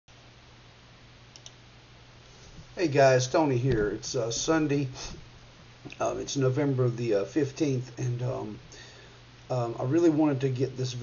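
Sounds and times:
low hum and hiss: 0.1 - 11.0
faint clicks: 1.3 - 1.6.

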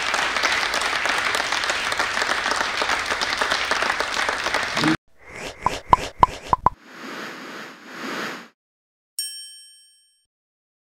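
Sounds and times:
sharp pops: 5.6 - 6.8.

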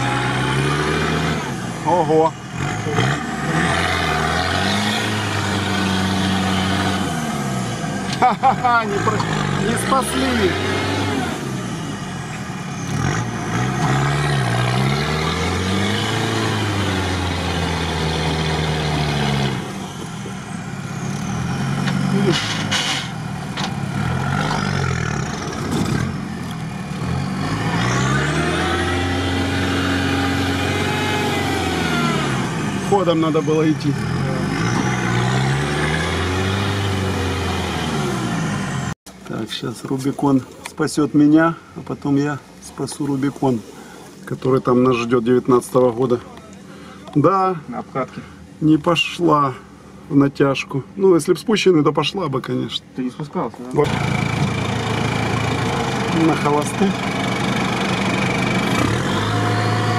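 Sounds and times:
off-road engine revving: 0.0 - 59.9.

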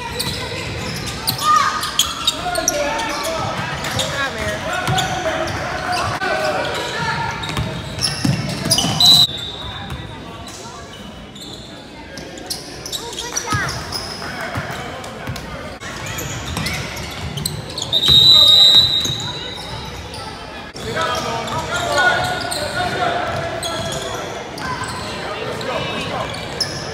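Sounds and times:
spectators talking and calling out: 0.0 - 26.9
referee's whistle blast: 8.7 - 9.8, 17.8 - 19.4.

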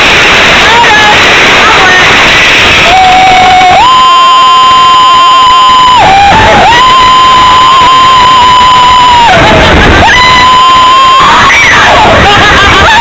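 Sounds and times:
person screaming: 2.8 - 4.3, 5.8 - 13.0.

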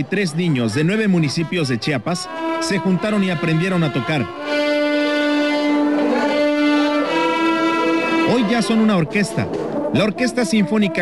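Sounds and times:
children's violins playing: 0.0 - 11.0.

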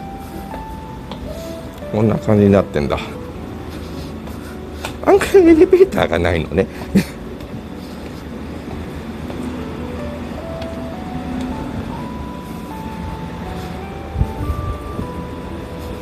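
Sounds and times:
simple electronic melody: 0.0 - 16.0
traffic and buses: 0.0 - 16.0.

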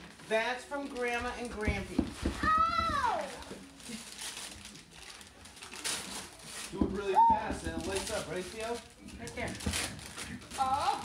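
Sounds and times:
wrapping paper rustling: 0.0 - 11.0.

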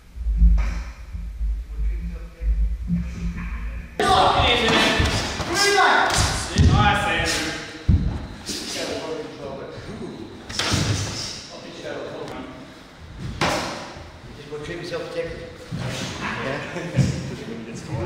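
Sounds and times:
voices calling out in hall: 3.0 - 18.0.

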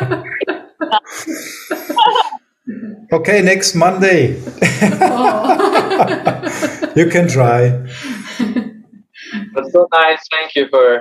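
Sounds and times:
people laughing over a video call: 0.0 - 2.4, 4.3 - 9.6.

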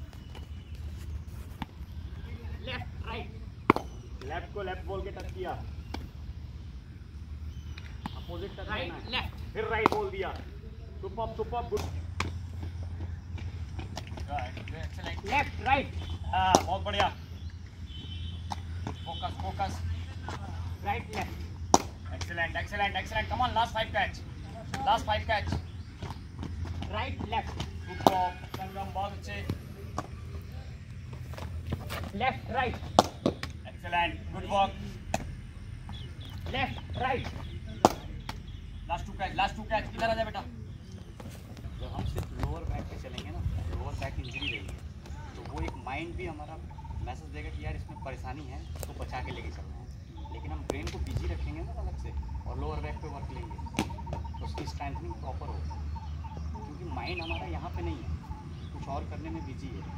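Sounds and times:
ball slapping into gloves: 3.6 - 4.3, 9.8 - 10.2, 16.4 - 17.1, 21.1 - 22.3, 32.8 - 33.6, 37.8 - 38.4
cricket ball knocks: 21.7 - 22.0, 32.8 - 33.6.

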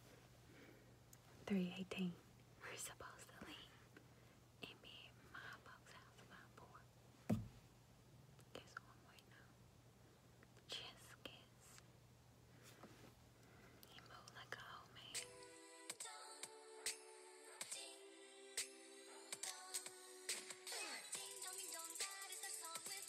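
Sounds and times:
faint whispering: 1.4 - 3.9, 4.6 - 6.9, 8.5 - 9.6, 10.6 - 11.8, 13.8 - 15.2
sharp knock: 7.3 - 7.6.

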